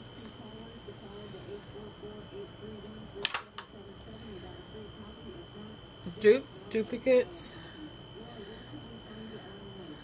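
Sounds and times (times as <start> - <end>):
steady high whine: 0.0 - 10.0.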